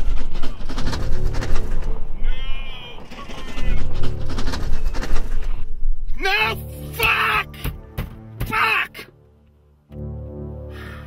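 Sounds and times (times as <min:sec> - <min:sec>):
loud background music: 0:06.2 - 0:09.1.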